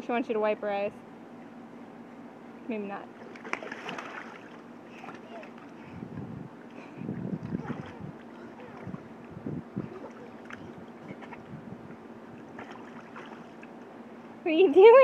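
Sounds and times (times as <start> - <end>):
water sloshing and splashing: 3.0 - 6.0, 7.1 - 13.9.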